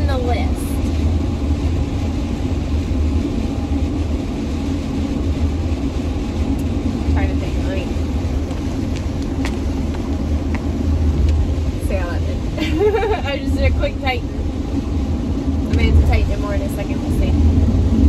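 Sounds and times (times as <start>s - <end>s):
engine and tyre rumble: 0.0s - 18.0s.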